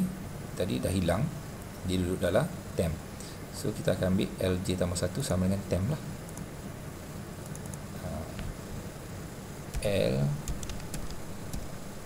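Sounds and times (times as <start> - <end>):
room noise hum and hiss: 0.0 - 12.0
computer mouse clicks: 6.3 - 6.5, 7.4 - 7.8, 9.7 - 11.7.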